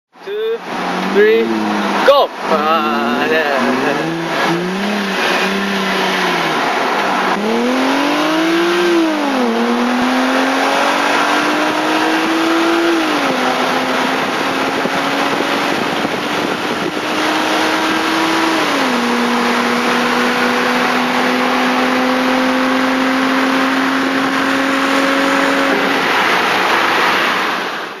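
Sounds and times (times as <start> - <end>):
car engine accelerating: 0.2 - 28.0
wind and road rush: 0.2 - 28.0.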